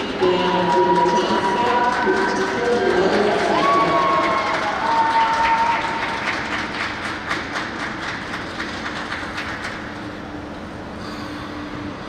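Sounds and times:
crowd clapping: 0.0 - 10.0.

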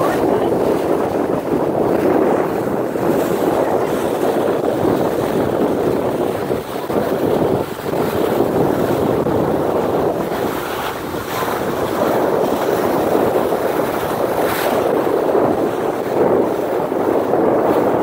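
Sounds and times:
bow wave rushing along hull: 0.0 - 18.0
wind buffeting microphone: 0.0 - 18.0.

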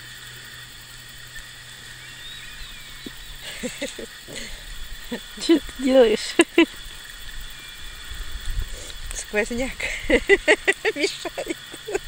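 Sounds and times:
high hiss: 0.0 - 12.0
low steady hum: 0.0 - 12.0.

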